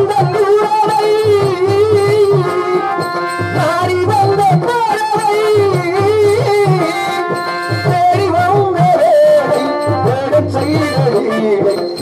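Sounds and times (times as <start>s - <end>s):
drum beats: 0.0s - 12.0s
hand cymbals: 0.0s - 12.0s
high ornamented singing melody: 3.1s - 12.0s.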